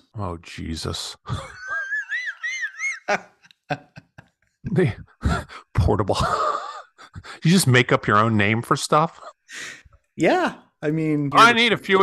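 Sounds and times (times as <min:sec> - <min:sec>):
man laughing squeaky wheeze: 0:01.3 - 0:04.2, 0:06.2 - 0:07.4.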